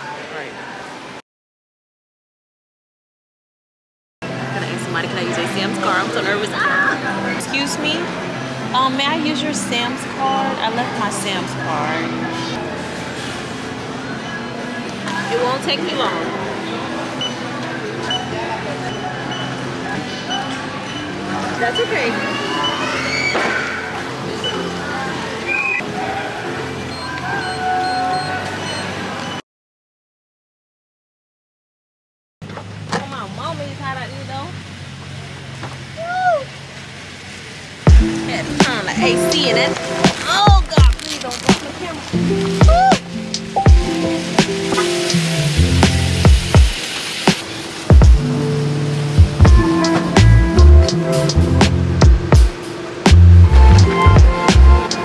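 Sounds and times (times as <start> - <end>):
distant indistinct voices: 4.2 - 29.4
wavering voice sounds: 42.2 - 44.1.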